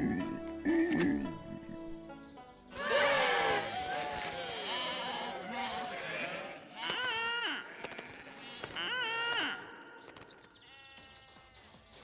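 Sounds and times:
loud sheep bleat: 2.8s - 9.8s, 10.6s - 11.6s
cartoon sheep bleating: 4.3s - 9.7s.

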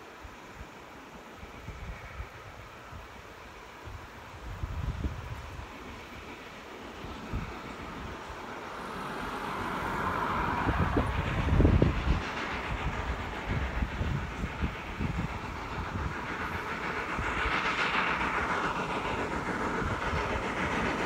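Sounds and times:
distant steam locomotive working: 0.0s - 21.0s
wind buffeting microphone: 3.8s - 6.4s, 7.0s - 21.0s.

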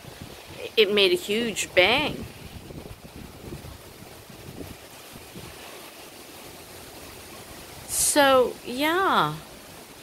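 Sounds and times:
steady rushing hiss: 0.0s - 10.0s
wind gusting on microphone: 0.0s - 10.0s.

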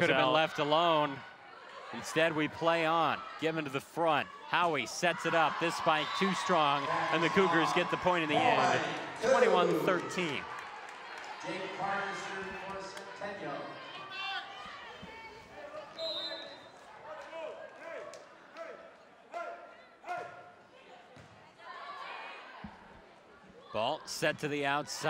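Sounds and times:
people calling out: 7.1s - 10.3s.

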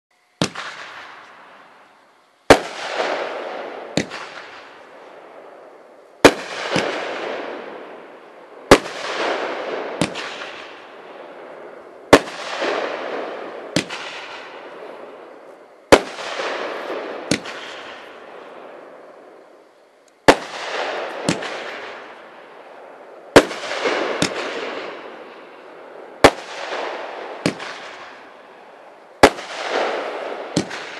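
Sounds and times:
firework crackle: 0.2s - 30.9s
firework bangs: 0.4s - 30.9s.

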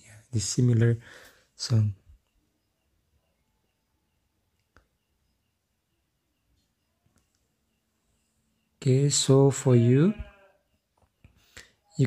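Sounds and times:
man speaking: 0.0s - 2.2s, 8.8s - 10.2s.

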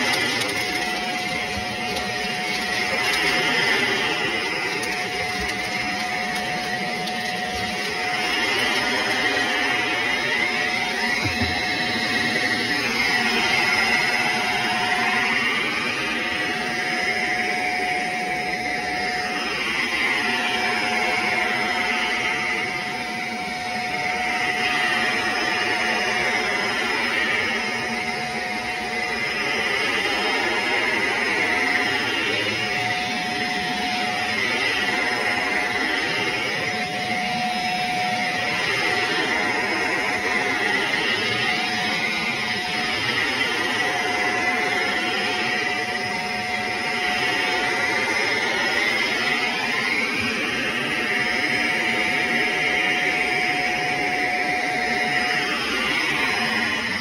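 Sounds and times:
vacuum cleaner on carpet: 0.0s - 57.0s.

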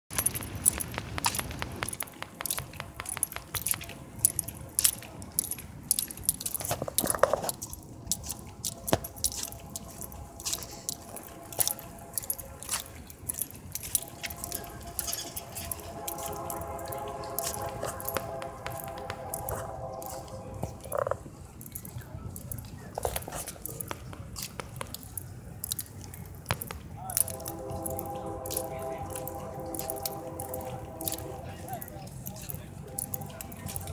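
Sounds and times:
distant locomotive horn: 8.4s - 21.5s, 27.1s - 33.9s.

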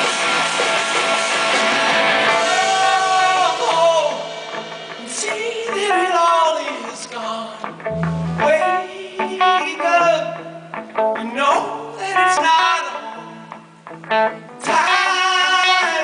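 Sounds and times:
drums: 0.0s - 11.5s, 12.1s - 16.0s
electric guitars: 0.0s - 16.0s
person singing: 2.4s - 4.4s, 5.0s - 10.4s, 14.6s - 16.0s.

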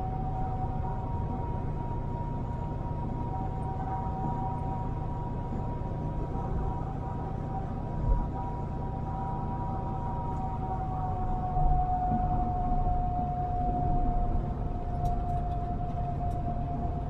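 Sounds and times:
truck engine and road rumble: 0.0s - 17.0s
high whine sinking in pitch: 2.9s - 17.0s.

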